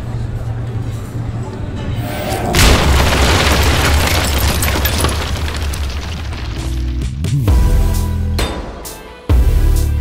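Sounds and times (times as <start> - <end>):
low rumble: 1.6 - 6.4
heavy cinematic hit: 2.0 - 4.6
music: 6.4 - 10.0.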